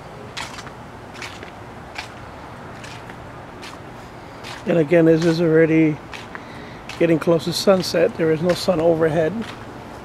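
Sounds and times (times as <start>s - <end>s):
steady background hiss: 0.0s - 10.0s
footsteps on brick pavers: 0.3s - 9.6s.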